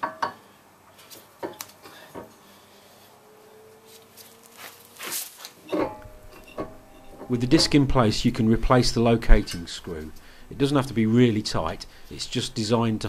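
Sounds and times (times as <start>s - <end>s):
short scraping rustle: 3.8s - 5.6s
light metal knocks and clinks: 5.6s - 7.8s.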